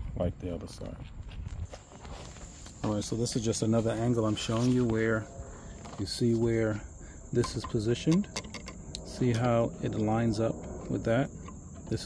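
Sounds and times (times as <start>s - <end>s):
low outdoor background noise: 0.0s - 12.0s
faint high-pitched tone: 4.0s - 8.3s.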